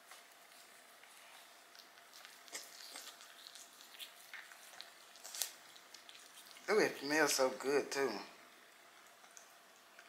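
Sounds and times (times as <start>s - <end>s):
toothbrush scratching teeth: 0.5s - 7.0s.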